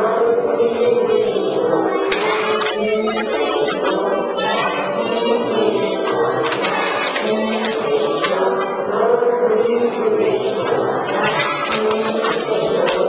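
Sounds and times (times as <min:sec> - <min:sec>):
children singing together: 0:00.0 - 0:13.0
hand claps: 0:02.1 - 0:04.1, 0:06.0 - 0:08.8, 0:10.6 - 0:13.0.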